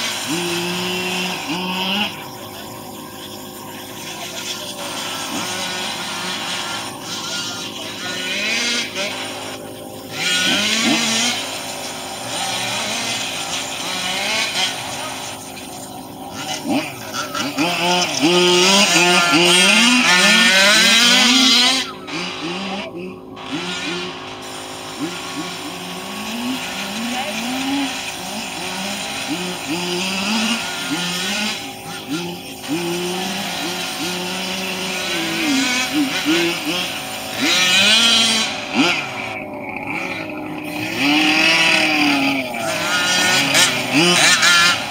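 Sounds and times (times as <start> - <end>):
rc car engines revving: 0.0 - 44.9.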